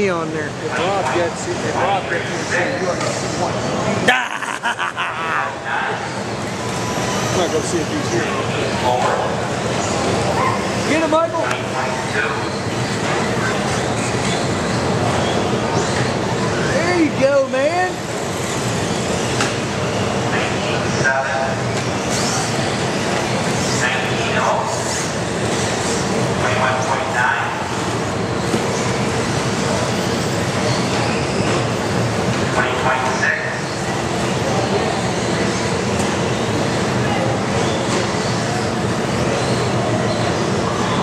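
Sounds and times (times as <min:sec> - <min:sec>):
voices talking: 0:00.0 - 0:41.0
small motors and tyres echoing: 0:18.0 - 0:20.3.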